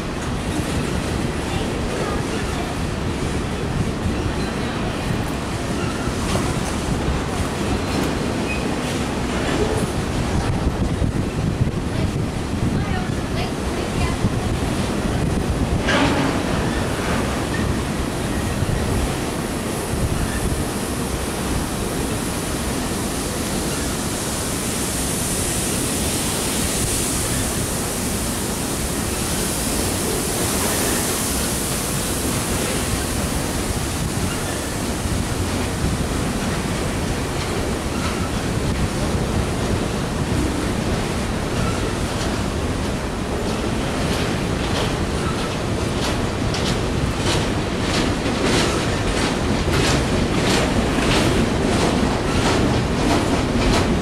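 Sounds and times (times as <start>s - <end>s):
rail cars rumbling past: 0.0s - 54.0s.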